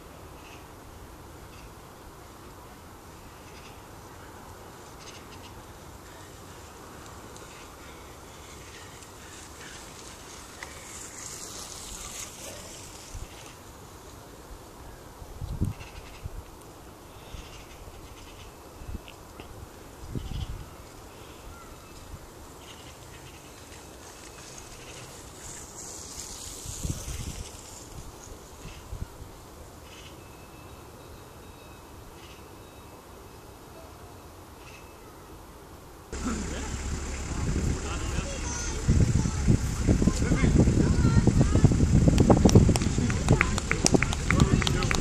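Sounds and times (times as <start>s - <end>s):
faint outdoor background noise: 0.0s - 45.0s
swells of hiss: 7.4s - 13.7s, 24.0s - 28.8s
short low thumps: 36.2s - 45.0s.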